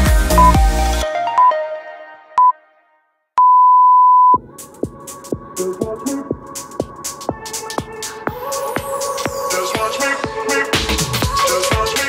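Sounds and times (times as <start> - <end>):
music: 0.0 - 3.3, 4.4 - 12.0
long steady timer beep: 0.4 - 0.6, 3.4 - 4.4.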